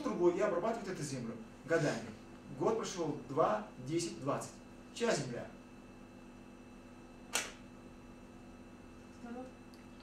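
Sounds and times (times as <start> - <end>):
steady low hum: 0.0 - 10.0
short sharp click: 7.3 - 7.6.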